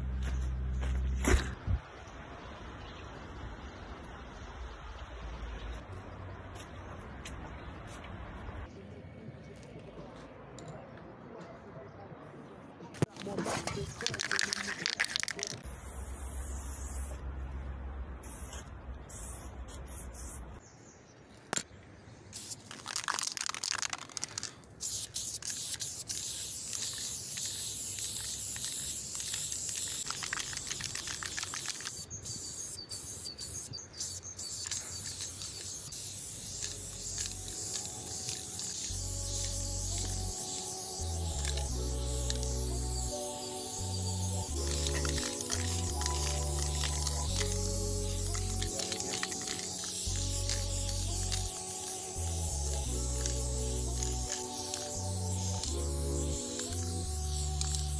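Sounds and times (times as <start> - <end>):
spray can rattling: 13.0 - 15.8, 22.4 - 57.9
spray paint hissing: 13.0 - 17.2, 18.2 - 20.4, 22.3 - 57.9
music beat: 35.9 - 57.9.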